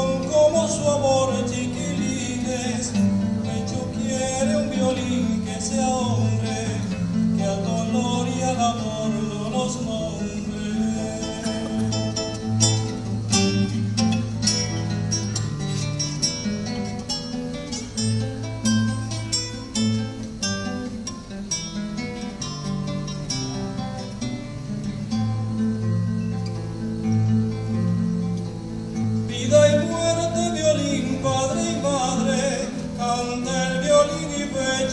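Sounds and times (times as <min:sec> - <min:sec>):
acoustic guitar picking and strumming: 0:00.0 - 0:34.9.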